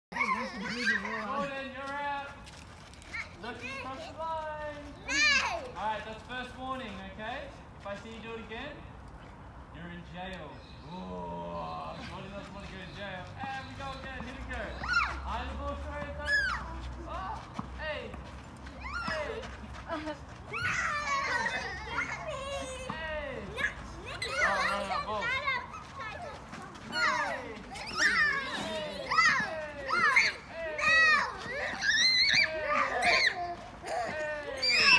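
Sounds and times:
children calling and shouting: 0.1 - 8.3, 10.4 - 34.9.

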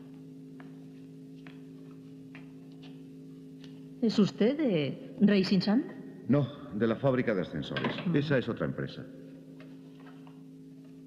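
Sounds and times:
elevator machinery humming: 0.0 - 11.0.

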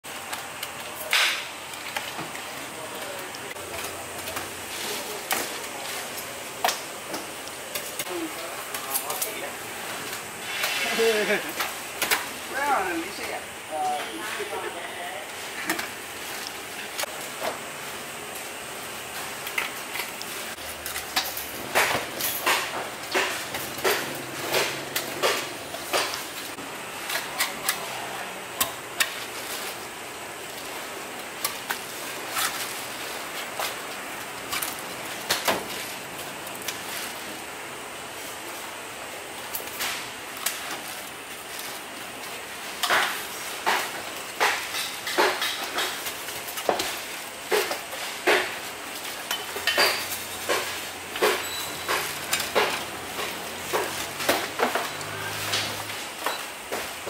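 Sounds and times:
steady background hiss: 0.1 - 57.0.

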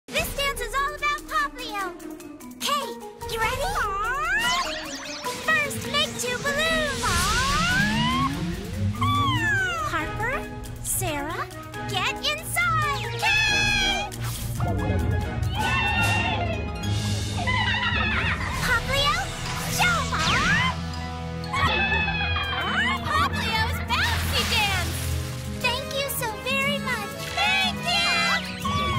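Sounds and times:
cartoon background music: 0.1 - 28.9
creature yelping cries: 7.2 - 9.9.

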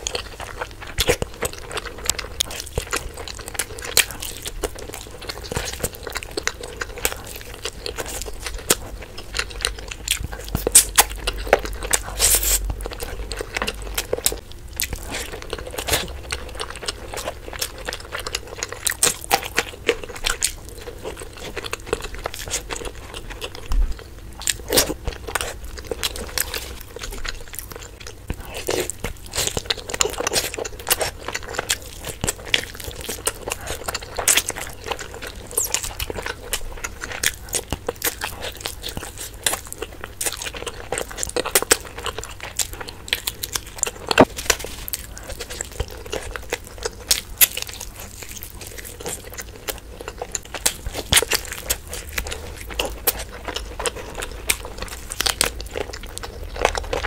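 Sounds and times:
person chewing crunchy food: 0.0 - 57.0.

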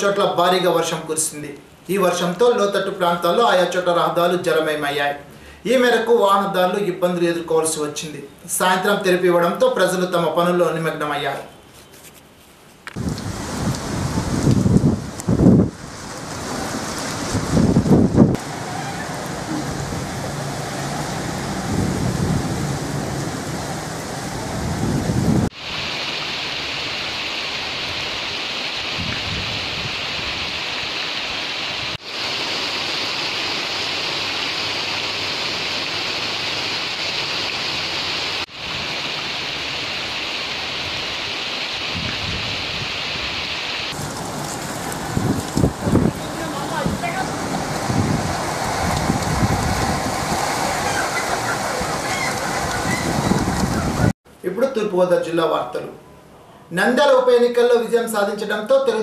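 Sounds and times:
heavy rain hissing: 12.9 - 54.2
gusty low storm rumbling: 13.0 - 25.6, 28.9 - 30.5, 44.0 - 54.2.

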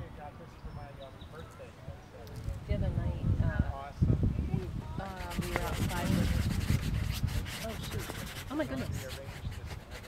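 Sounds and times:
cloth sleeve rubbing: 5.0 - 10.0.

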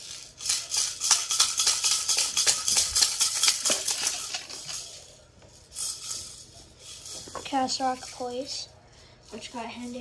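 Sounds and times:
rapid shaker-like rattling: 0.0 - 10.0.

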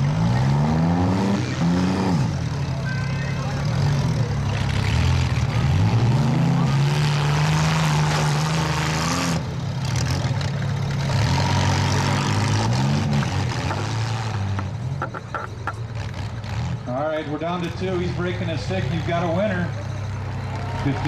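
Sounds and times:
car engines revving hard: 0.0 - 21.0.

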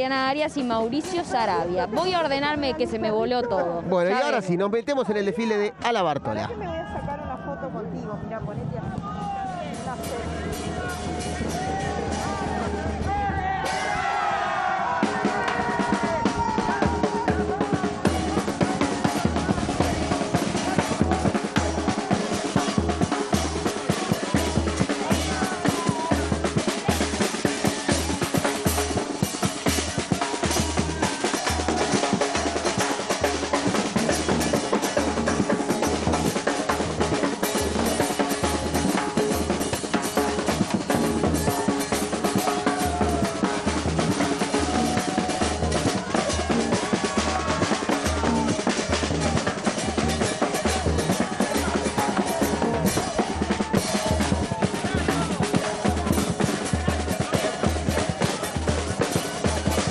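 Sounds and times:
bass drum beats: 0.0 - 4.3, 8.3 - 59.9.

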